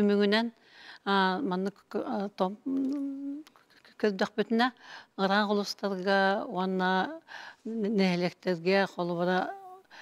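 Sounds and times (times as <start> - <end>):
woman speaking: 0.0 - 3.3, 4.0 - 9.8
woman humming filler sound: 2.6 - 3.5.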